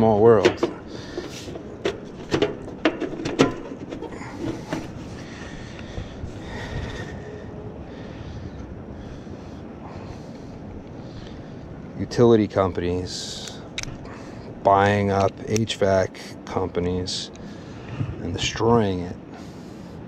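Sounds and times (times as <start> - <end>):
air conditioner unit humming: 0.0 - 20.0.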